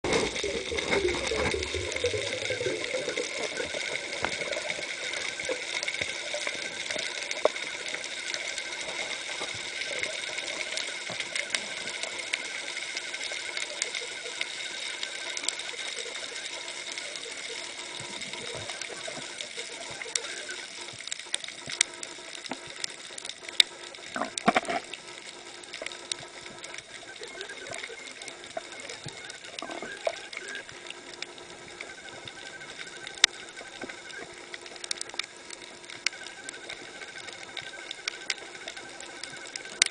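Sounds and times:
constant high whine: 0.0s - 39.9s.

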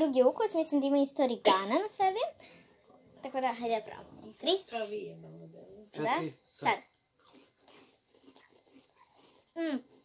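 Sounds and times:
crackers being chewed: 6.9s - 10.0s.

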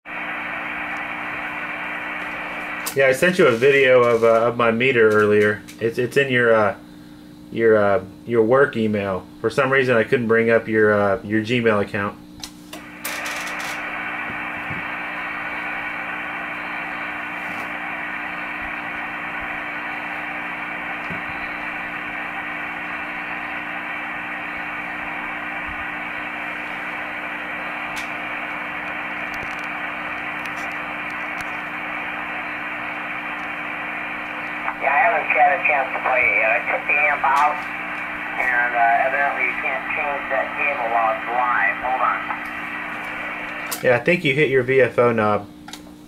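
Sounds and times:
radio receiver hiss: 0.1s - 7.4s, 12.4s - 44.8s
low steady hum: 0.1s - 45.9s.

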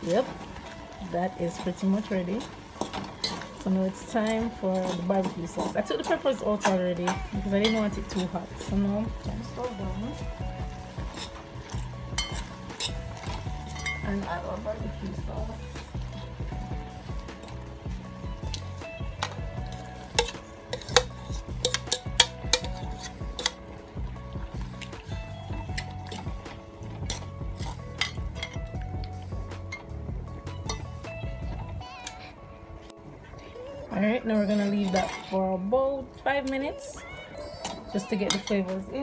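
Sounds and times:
background music: 0.0s - 39.0s
utensil scraping a cooking pot: 4.2s - 15.0s, 16.0s - 23.7s, 24.8s - 28.7s, 34.3s - 35.6s, 37.6s - 39.0s.

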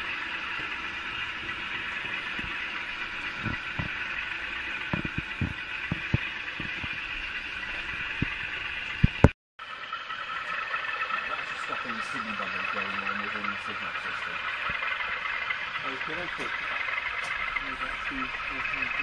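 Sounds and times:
diesel engine sound from small speaker: 0.0s - 19.0s
model wheels clicking over rail joints: 0.0s - 19.0s.

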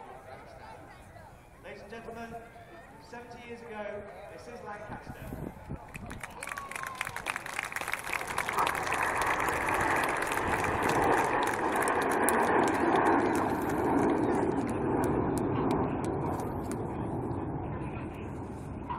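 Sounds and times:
jets passing by: 6.2s - 18.9s.

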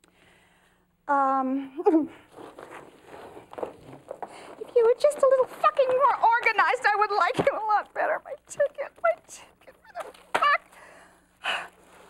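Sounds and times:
paper envelopes rustling: 2.3s - 10.6s
woman gasping: 10.7s - 11.8s.

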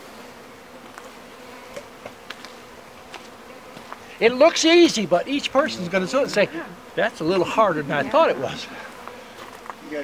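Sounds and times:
bees buzzing: 0.0s - 10.0s.

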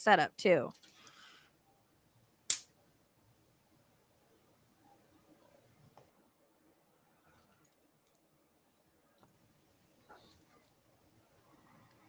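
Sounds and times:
sharp click: 2.5s - 2.7s.

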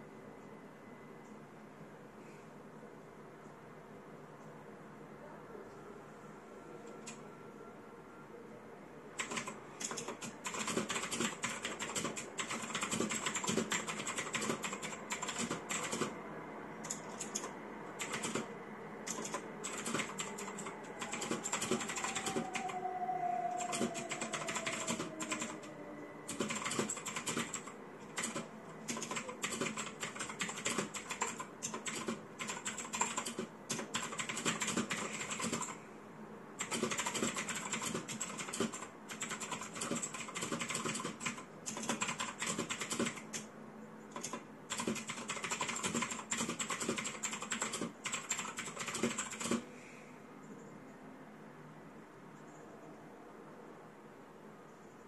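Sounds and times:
typing on mechanical keyboard: 9.2s - 16.2s, 16.8s - 22.8s, 23.5s - 25.7s, 26.3s - 35.8s, 36.6s - 43.5s, 44.1s - 49.7s.

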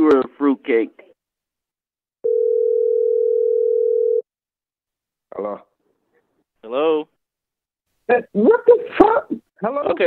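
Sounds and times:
telephone line tone: 2.2s - 4.2s.

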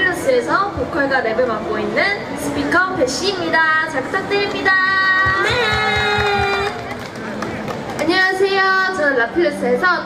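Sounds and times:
woman's voice over loudspeakers: 0.0s - 6.5s, 8.0s - 10.0s
murmur of crowd: 0.0s - 10.0s.

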